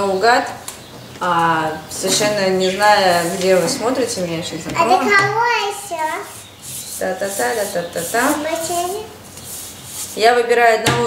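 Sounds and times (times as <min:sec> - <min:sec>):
young girl speaking: 0:04.8 - 0:06.5, 0:08.3 - 0:09.2.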